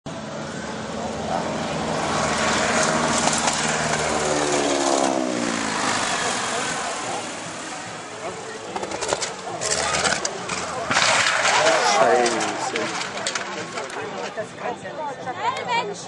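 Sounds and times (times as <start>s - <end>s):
biplane flying overhead: 0.1s - 14.0s.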